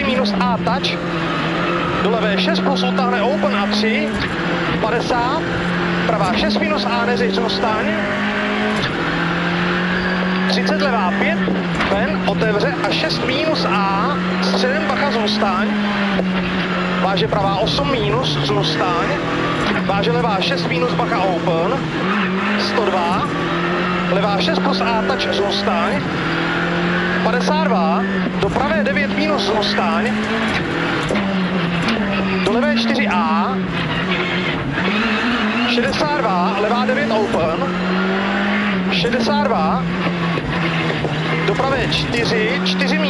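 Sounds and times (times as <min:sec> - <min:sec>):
rally car engine accelerating: 0:00.0 - 0:43.0
tyre and road noise: 0:00.0 - 0:43.0.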